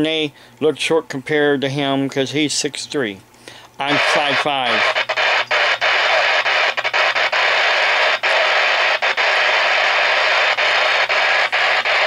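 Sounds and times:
loud static hiss: 0:02.1 - 0:12.0.

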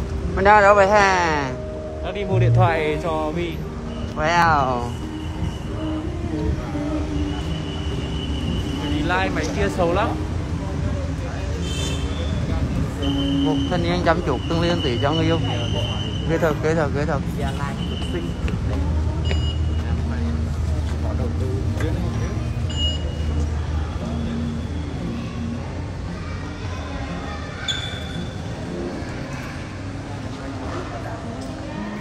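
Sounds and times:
faint voices: 0:00.0 - 0:32.0
motorbike and scooter engines: 0:00.0 - 0:32.0.

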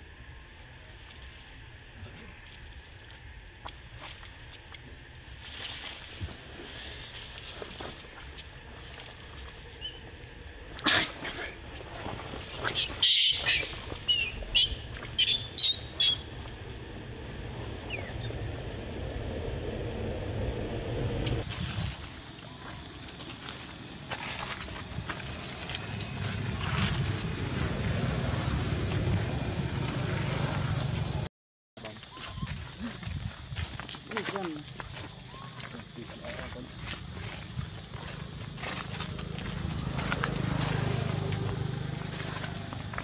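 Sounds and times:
baby monkey squealing: 0:12.6 - 0:16.2
macaques calling: 0:12.6 - 0:16.2.

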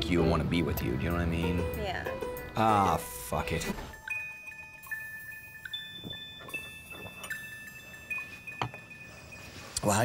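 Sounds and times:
chime-like background music: 0:00.0 - 0:10.0
faint clinks: 0:04.1 - 0:09.8.

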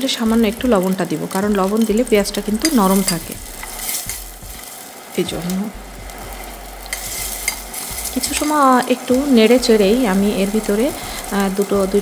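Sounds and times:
onions sizzling in hot oil: 0:00.0 - 0:12.0.

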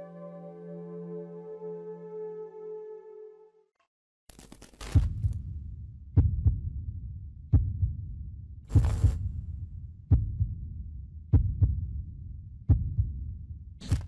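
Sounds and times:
heartbeat thumps: 0:06.2 - 0:12.0, 0:12.6 - 0:13.3.

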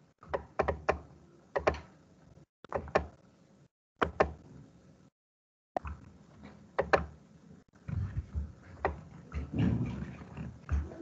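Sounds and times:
sharp clicks and knocks: 0:00.2 - 0:01.9, 0:05.8 - 0:07.2.

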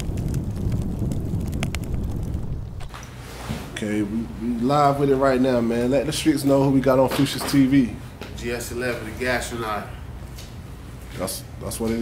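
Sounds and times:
fire crackles: 0:00.0 - 0:03.4
low fire rumble: 0:00.0 - 0:06.0.

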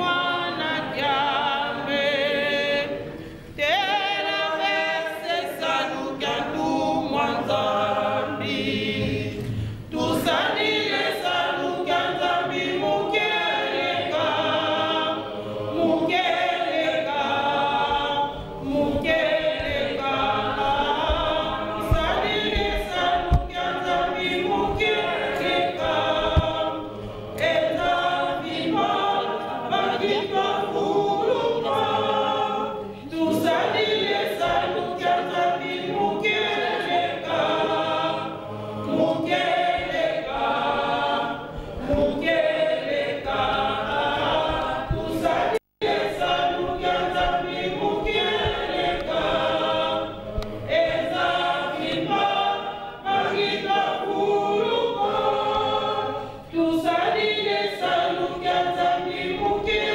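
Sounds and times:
choir singing a cappella: 0:00.0 - 0:59.9.

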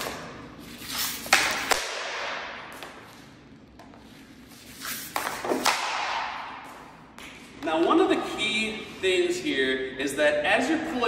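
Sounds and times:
hockey shot snap: 0:00.0 - 0:03.0, 0:05.0 - 0:07.4
puck scraping floor: 0:00.0 - 0:09.2
hockey stick clacking puck: 0:01.2 - 0:03.0, 0:05.0 - 0:06.4.

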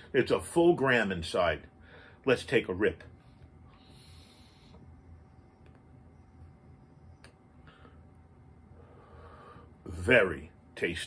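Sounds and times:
faint breath: 0:01.8 - 0:02.2, 0:03.2 - 0:05.0, 0:07.6 - 0:09.8.

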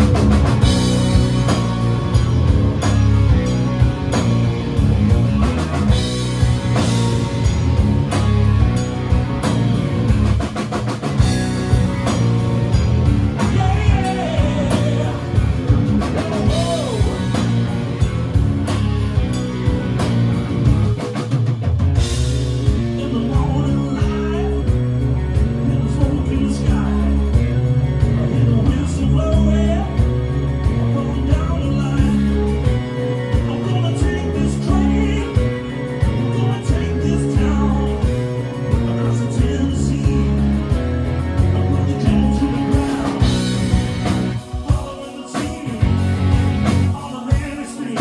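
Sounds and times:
bass guitar: 0:00.0 - 0:48.0
drum kit: 0:00.0 - 0:48.0
electric guitar: 0:00.0 - 0:48.0
keyboards: 0:00.0 - 0:48.0
man singing lead vocal: 0:13.3 - 0:17.6, 0:22.6 - 0:48.0.

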